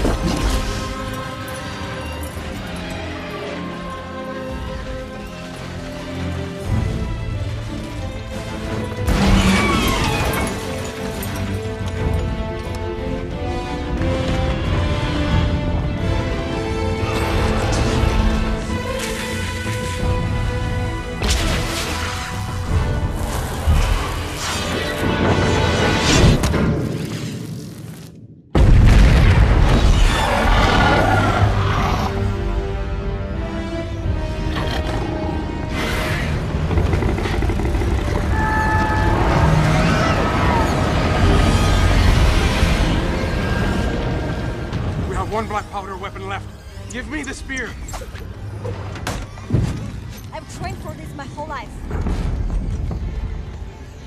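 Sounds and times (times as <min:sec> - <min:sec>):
film score music: 0:00.0 - 0:54.0.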